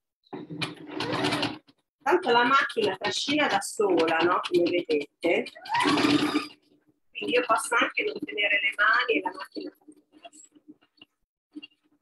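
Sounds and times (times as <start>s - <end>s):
sewing machine stitching: 0.4s - 8.2s.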